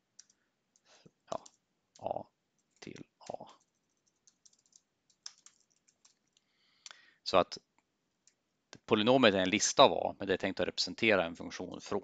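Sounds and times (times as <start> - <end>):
faint keyboard keystrokes: 0.2 - 7.0.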